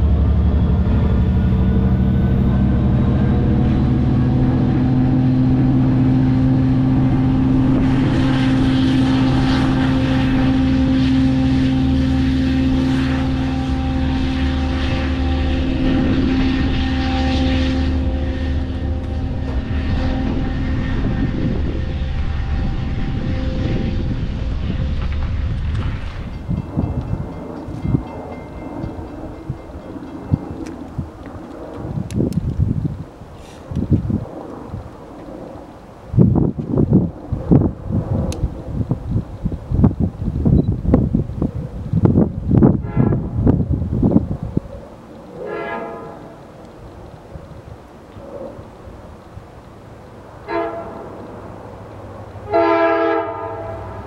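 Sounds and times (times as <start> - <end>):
diesel engine drone: 0.0 - 54.0
wheels rumbling on rails: 0.0 - 54.0
wind noise: 0.0 - 54.0.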